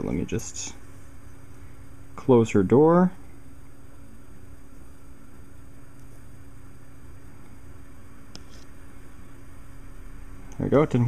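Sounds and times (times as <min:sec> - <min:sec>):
low background hum and hiss: 0:00.0 - 0:11.0.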